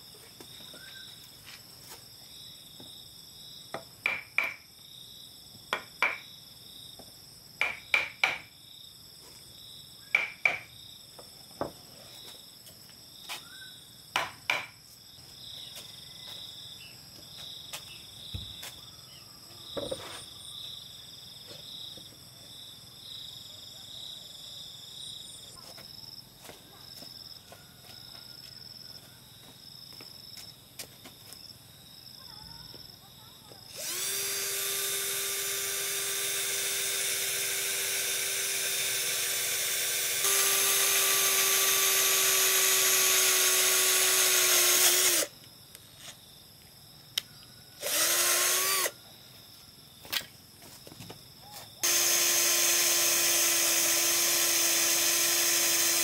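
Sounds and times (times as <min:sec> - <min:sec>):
hammer striking steel chisel: 0:04.0 - 0:04.6, 0:10.2 - 0:10.7
insect chirring: 0:33.7 - 0:50.2, 0:51.4 - 0:56.0.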